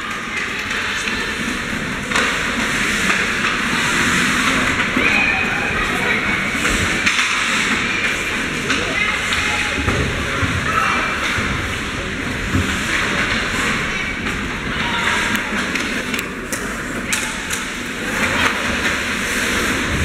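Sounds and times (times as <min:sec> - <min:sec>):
spectator chatter: 0:00.0 - 0:20.0
hockey stick or puck clicks: 0:15.3 - 0:17.7.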